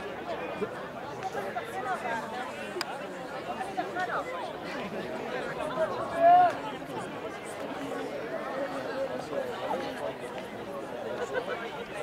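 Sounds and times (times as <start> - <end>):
crowd chattering: 0.0 - 12.0.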